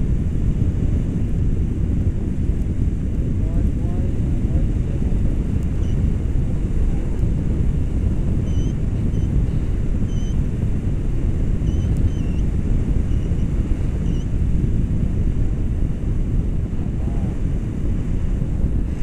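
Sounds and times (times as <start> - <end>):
wind rushing over microphone: 0.0 - 19.0
faint high beeps: 8.4 - 9.3.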